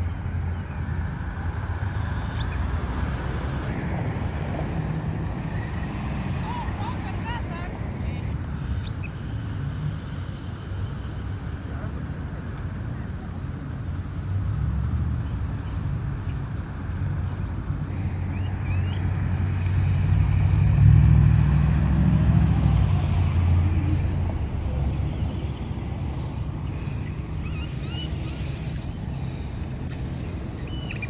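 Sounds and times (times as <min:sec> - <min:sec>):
cars driving past: 0:00.0 - 0:31.0.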